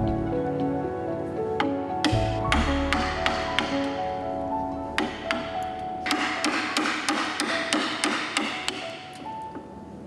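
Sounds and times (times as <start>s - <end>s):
background music with held tones: 0.0s - 8.0s
chisel striking wood: 1.6s - 4.0s, 5.0s - 9.2s.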